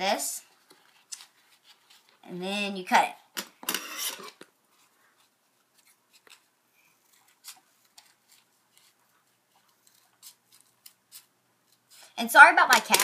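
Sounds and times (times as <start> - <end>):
scissors cutting paper: 9.7 - 11.9.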